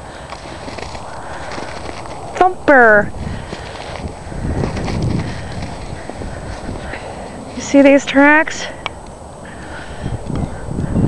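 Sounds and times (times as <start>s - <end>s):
footsteps in snow: 0.0s - 7.8s
steady background noise: 0.0s - 11.0s.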